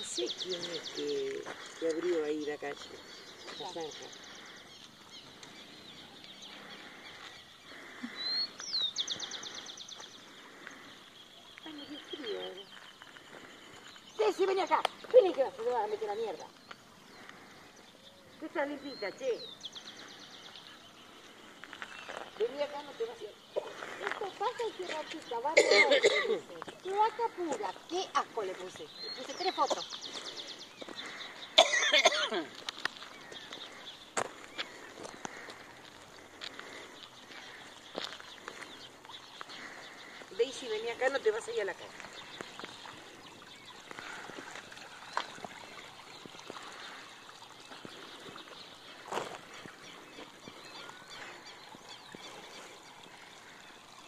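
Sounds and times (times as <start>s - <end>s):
birds chirping: 0.0s - 54.0s
person coughing: 25.6s - 26.4s, 31.6s - 32.5s.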